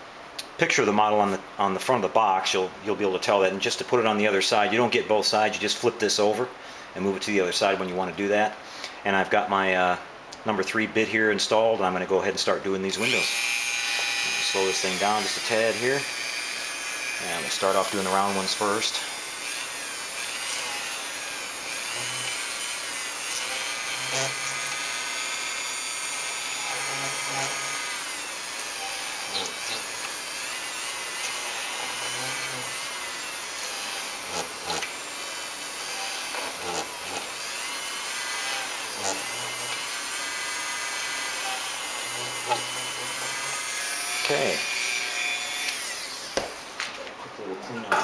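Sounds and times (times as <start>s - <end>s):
rotary tool drilling plastic: 13.0s - 46.7s.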